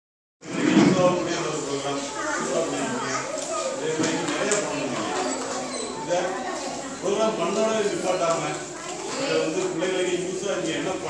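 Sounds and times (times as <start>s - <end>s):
children chattering: 0.4s - 11.0s.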